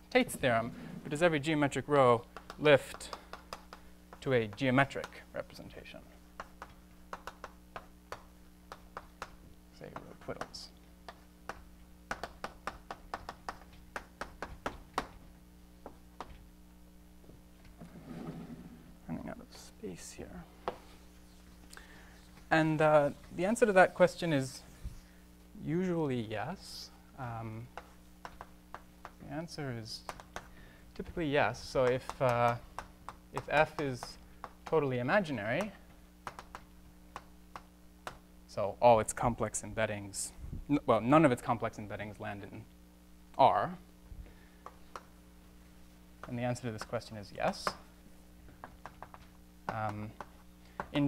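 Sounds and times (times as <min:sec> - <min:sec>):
chalk tapping on a blackboard: 0:02.2 - 0:05.2, 0:06.3 - 0:15.2, 0:20.6 - 0:21.0, 0:27.7 - 0:29.3, 0:30.0 - 0:38.3, 0:44.6 - 0:45.1, 0:46.2 - 0:47.9, 0:48.5 - 0:51.0.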